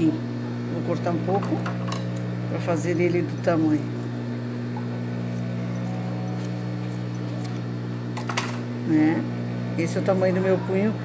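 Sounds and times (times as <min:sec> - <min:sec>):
sewing machine motor hum: 0:02.0 - 0:11.0.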